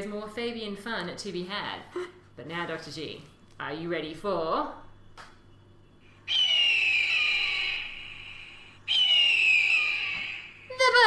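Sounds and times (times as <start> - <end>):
bird of prey screeching: 6.3 - 10.7.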